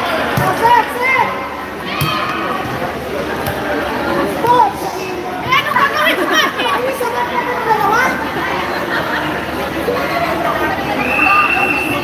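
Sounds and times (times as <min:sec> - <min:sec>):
players calling out and chattering: 0:00.0 - 0:12.0.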